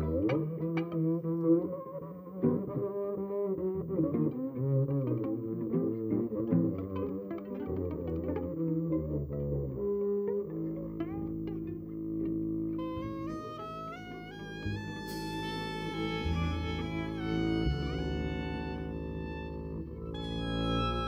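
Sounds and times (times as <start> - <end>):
double basses and cello: 0.0 - 21.0
high bowed violin line: 12.8 - 21.0.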